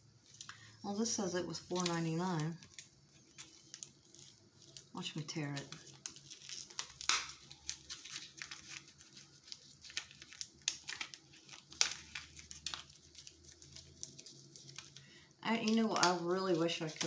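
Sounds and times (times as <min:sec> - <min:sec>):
plastic packaging crinkling: 0:00.2 - 0:17.0.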